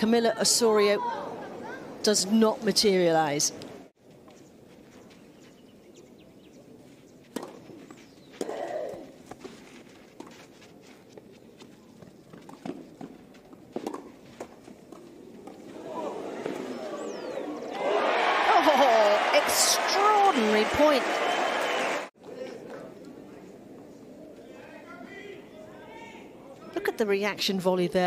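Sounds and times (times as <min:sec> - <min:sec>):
murmur of tennis crowd: 0:00.0 - 0:03.9, 0:06.1 - 0:28.0
tennis ball bounced and struck: 0:07.3 - 0:09.6, 0:12.3 - 0:15.6.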